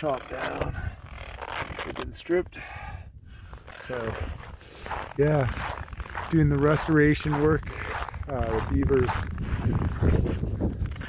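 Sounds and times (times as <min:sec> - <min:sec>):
clothing rustling on microphone: 0:03.5 - 0:11.0
footsteps crunching over snow: 0:03.5 - 0:11.0.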